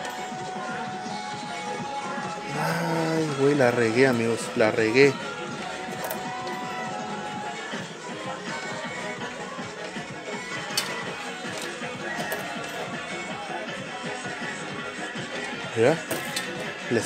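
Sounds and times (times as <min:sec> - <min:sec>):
electronic machine music: 0:00.0 - 0:13.6.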